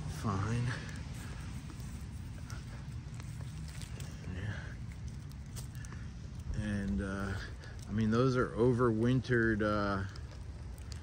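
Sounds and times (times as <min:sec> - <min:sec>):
leaves rustling: 0:00.0 - 0:11.0
low steady microphone rumble: 0:00.0 - 0:11.0
soil tearing: 0:00.0 - 0:11.0.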